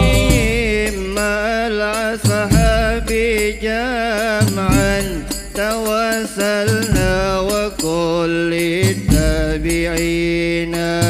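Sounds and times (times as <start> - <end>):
voices singing sustained notes: 0.0 - 6.7
frame drum strokes: 0.0 - 11.0.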